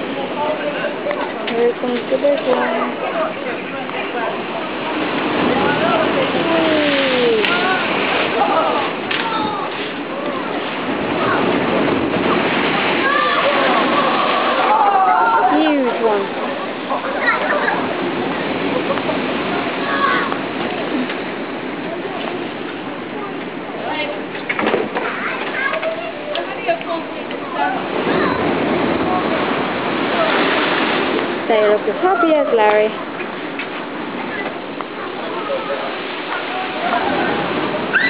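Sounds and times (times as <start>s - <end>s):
faint voices of onlookers: 0.0s - 30.8s, 31.5s - 38.0s
sea waves crashing against wall: 0.0s - 38.0s
people calling out: 6.0s - 9.7s, 13.0s - 16.4s.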